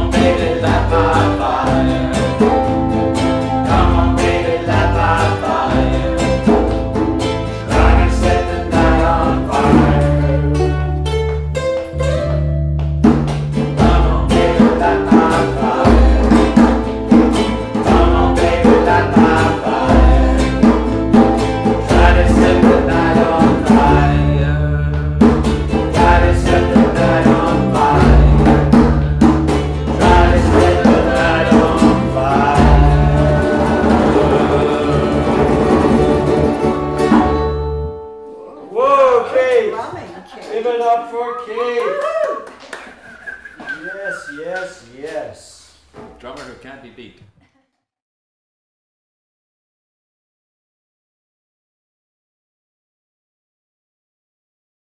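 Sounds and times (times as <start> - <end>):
djembe drumming: 0.0 - 10.3, 12.8 - 37.6
voices singing along: 0.0 - 11.0, 13.7 - 37.0, 42.9 - 45.9
bass line: 0.0 - 38.1
ukuleles strumming: 0.0 - 38.8, 42.8 - 44.6.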